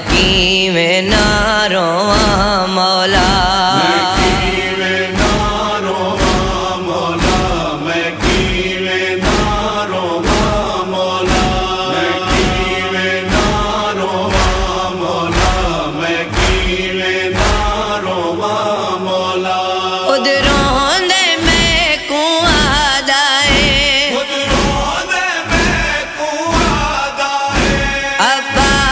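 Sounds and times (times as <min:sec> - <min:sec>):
deep thumping beat: 0:00.0 - 0:18.8, 0:20.4 - 0:28.9
chorus chanting wordless refrain: 0:00.0 - 0:28.9.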